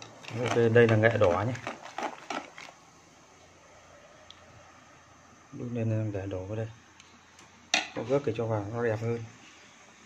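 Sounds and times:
liquid boiling and bubbling: 0:00.0 - 0:08.4.

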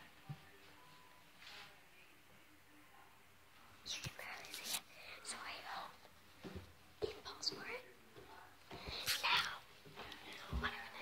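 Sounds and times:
girl whispering: 0:03.8 - 0:06.0, 0:07.0 - 0:07.9, 0:08.8 - 0:11.0.

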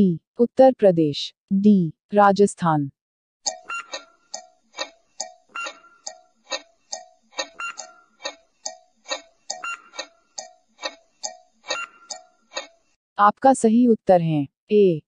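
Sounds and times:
clock ticking: 0:03.5 - 0:12.8.

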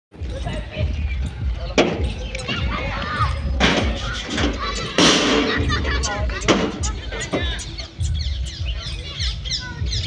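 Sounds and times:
voices: 0:00.2 - 0:10.0.

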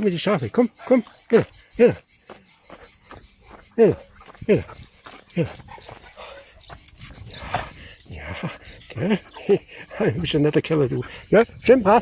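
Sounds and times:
man speaking coaxingly: 0:00.0 - 0:02.1, 0:03.7 - 0:05.7, 0:08.0 - 0:12.0
crickets chirping: 0:00.0 - 0:12.0.

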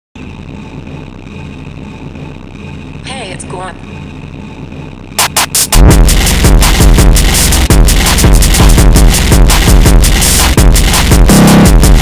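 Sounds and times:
low distorted drone: 0:00.2 - 0:12.0.

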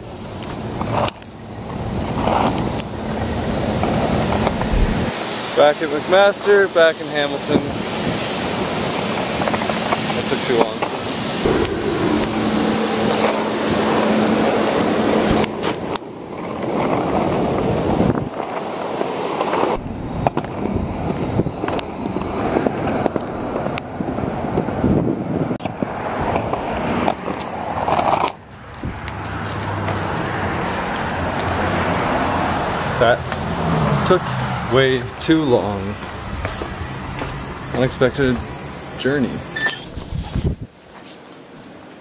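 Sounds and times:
wheels clicking over sidewalk joints: 0:00.0 - 0:04.8, 0:05.5 - 0:11.4, 0:15.0 - 0:40.4
skateboard wheels rolling on concrete: 0:00.0 - 0:11.8, 0:13.0 - 0:42.0.

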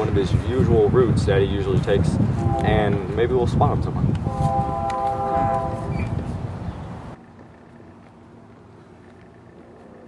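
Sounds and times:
wind rumble on microphone: 0:00.0 - 0:08.0
horn chord: 0:02.4 - 0:03.2, 0:04.2 - 0:06.0.

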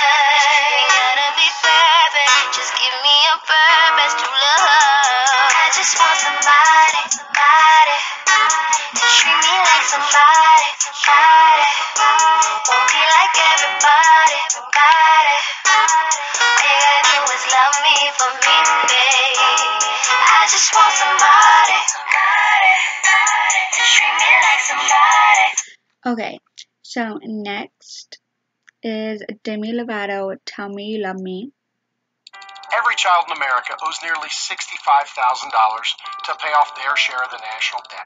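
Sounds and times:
pop song with lead vocal: 0:00.0 - 0:25.7.

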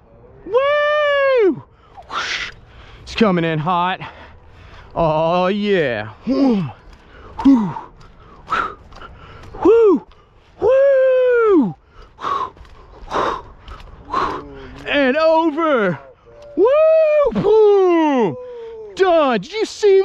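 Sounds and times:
men whooping: 0:00.4 - 0:02.6, 0:09.5 - 0:11.8, 0:15.6 - 0:20.0
heavy breathing: 0:01.6 - 0:03.1, 0:04.0 - 0:05.0, 0:06.1 - 0:10.7, 0:11.6 - 0:15.1, 0:15.8 - 0:16.6.

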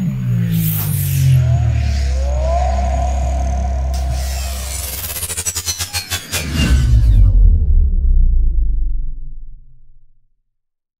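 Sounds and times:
whoosh: 0:03.8 - 0:09.5.

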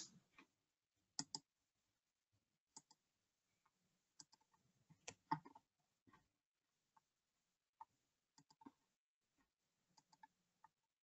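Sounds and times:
computer mouse clicks: 0:01.2 - 0:01.5, 0:02.7 - 0:03.0, 0:04.2 - 0:05.6, 0:08.4 - 0:08.8, 0:10.0 - 0:10.8.

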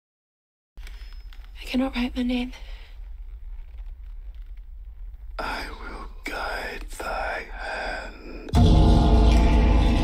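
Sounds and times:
whispered moaning voice: 0:05.4 - 0:08.6.

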